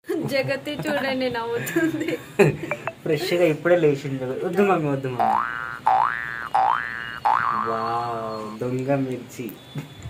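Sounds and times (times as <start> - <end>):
comic boing sound effect: 5.2 - 7.8.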